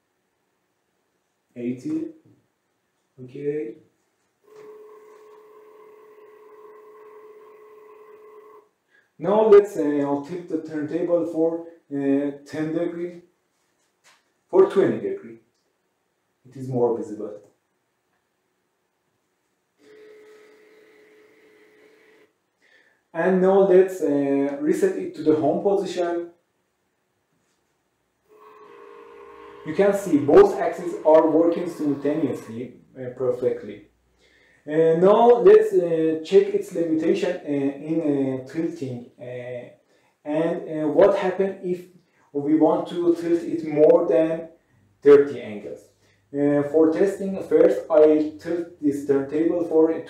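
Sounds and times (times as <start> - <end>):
turntable motor whine: 4.5 - 8.6, 19.8 - 22.3, 28.3 - 32.6.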